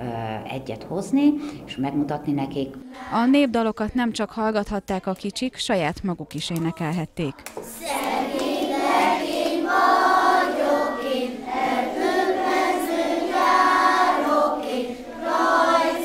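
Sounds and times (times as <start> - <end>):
children singing folk song: 7.6 - 16.0.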